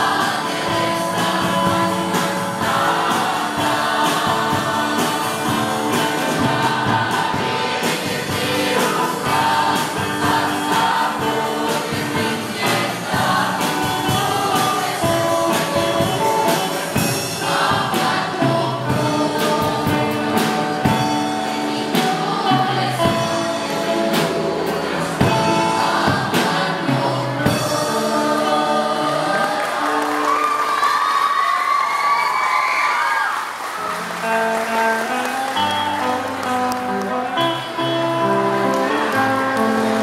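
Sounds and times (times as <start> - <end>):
mixed choir singing in harmony: 0.0 - 31.2.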